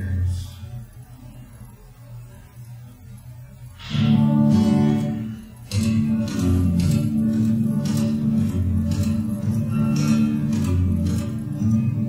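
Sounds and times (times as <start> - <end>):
acoustic guitar strumming: 3.8 - 12.0.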